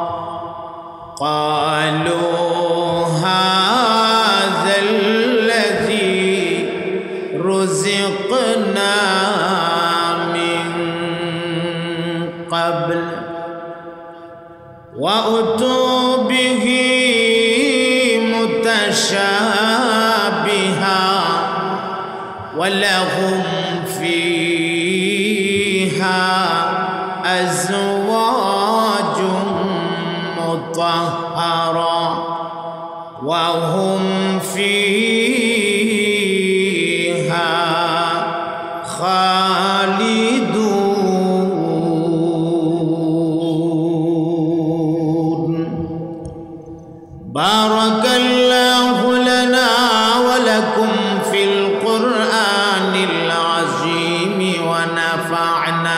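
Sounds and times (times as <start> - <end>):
man chanting: 0.0 - 55.9.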